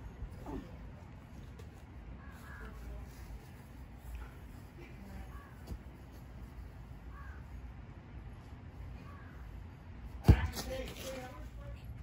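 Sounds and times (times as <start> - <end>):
ball kicked thud: 10.2 - 10.8.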